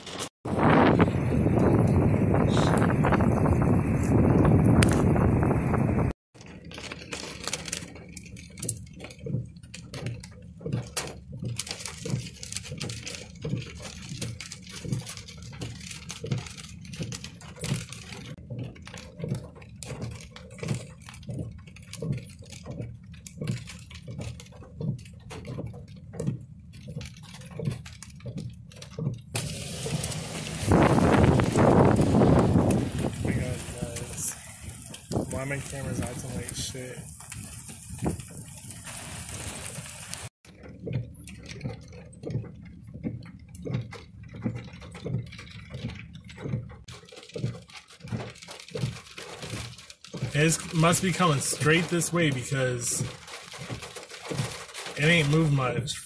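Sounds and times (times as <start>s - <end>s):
wind on microphone: 0.5s - 6.1s, 30.3s - 40.0s.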